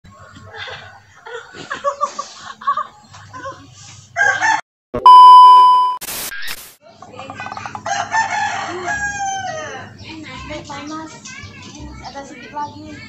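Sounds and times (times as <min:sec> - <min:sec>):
rooster crowing: 0:04.2 - 0:04.6, 0:07.9 - 0:09.9
electronic beep: 0:05.0 - 0:06.0.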